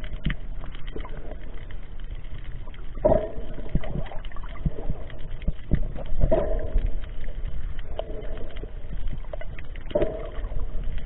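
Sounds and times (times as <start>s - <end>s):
muffled underwater water noise: 0.0s - 11.0s
small underwater clicks: 0.0s - 11.0s
water surges: 0.0s - 11.0s.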